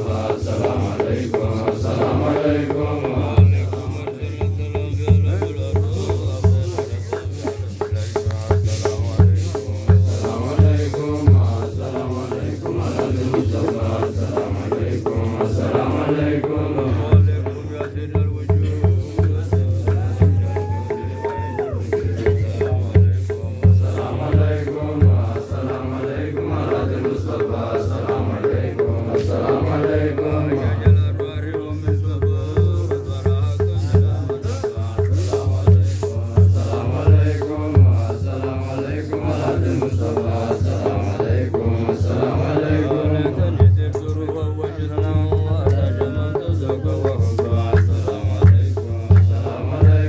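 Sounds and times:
men chanting together: 0.0s - 50.0s
steady drum beat: 0.0s - 50.0s.

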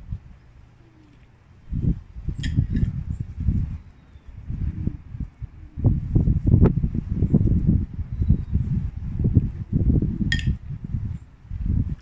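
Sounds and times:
wind buffeting microphone: 0.0s - 0.5s, 1.6s - 12.0s.

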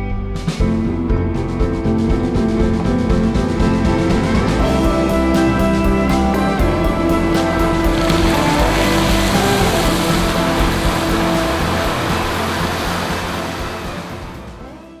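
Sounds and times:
background music: 0.0s - 15.0s
fountain water rushing: 4.6s - 15.0s.

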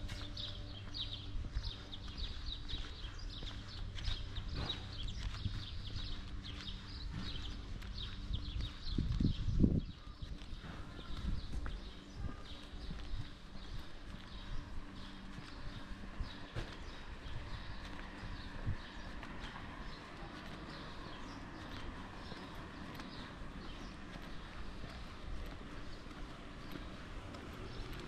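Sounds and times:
footsteps on pavement: 0.0s - 28.0s
small birds chirping: 0.0s - 28.0s.

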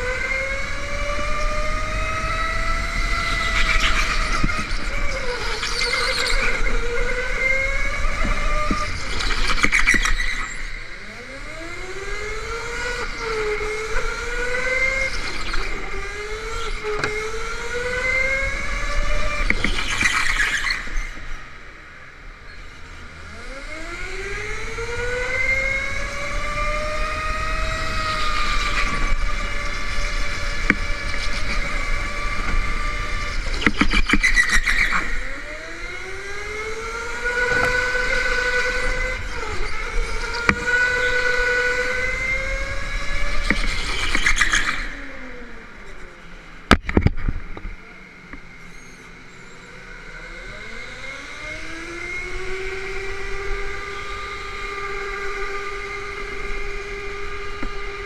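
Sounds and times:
electric go-kart motor whining: 0.0s - 58.0s.

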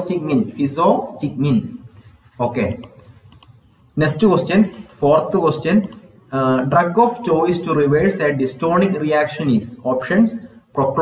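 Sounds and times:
man speaking: 0.0s - 3.1s, 3.9s - 11.0s
computer keyboard clicks: 2.7s - 3.6s.

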